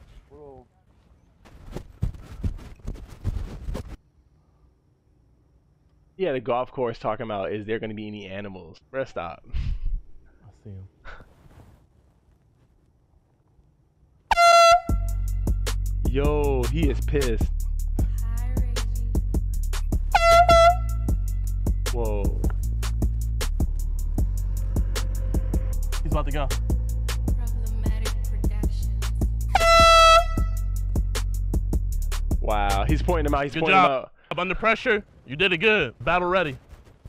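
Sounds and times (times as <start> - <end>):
air horn blast: 14.3 - 15.6, 20.1 - 21.5, 29.5 - 30.8
hip-hop beat: 14.7 - 33.8.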